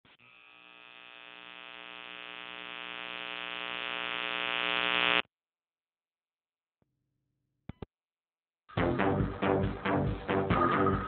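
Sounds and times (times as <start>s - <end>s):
electronic buzzing tone: 0.0s - 5.3s.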